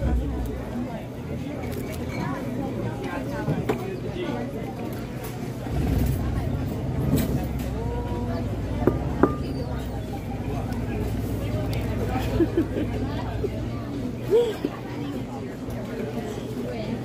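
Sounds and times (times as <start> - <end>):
people chatting: 0.0 - 17.0
vehicle engine rumbling: 5.7 - 12.2.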